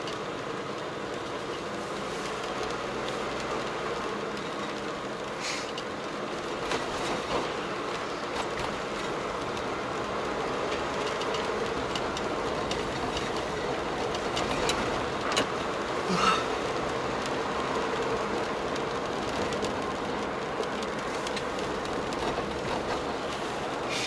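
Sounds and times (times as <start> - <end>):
car engine hum: 0.0 - 24.0
road and tyre noise: 0.0 - 24.0.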